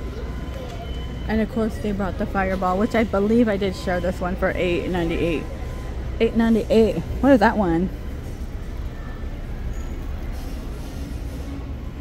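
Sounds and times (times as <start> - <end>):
store background rumble: 0.0 - 12.0.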